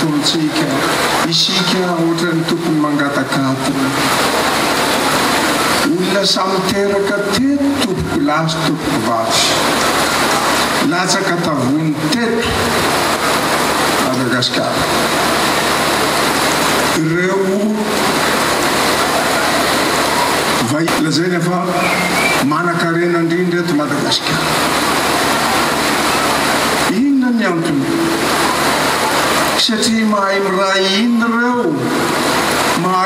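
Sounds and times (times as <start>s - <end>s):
loud rushing noise: 0.0s - 33.0s.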